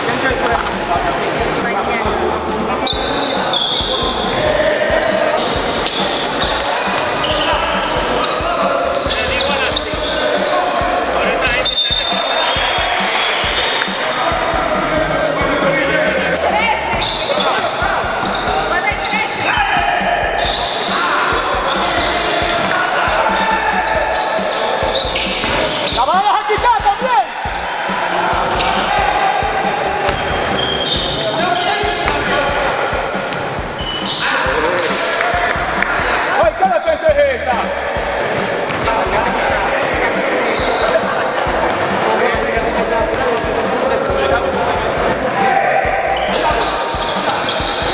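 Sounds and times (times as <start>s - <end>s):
sneakers squeaking: 0.0s - 14.8s, 16.1s - 36.2s, 38.2s - 47.9s
basketball game in gym: 0.0s - 47.9s
electronic dance music: 0.0s - 47.9s
indistinct players' voices: 0.0s - 47.9s
basketball bouncing on floor: 32.0s - 32.3s.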